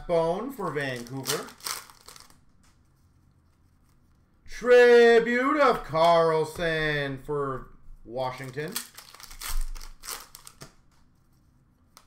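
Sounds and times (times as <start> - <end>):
foil pack crinkling: 0.5 - 2.4, 8.3 - 10.8.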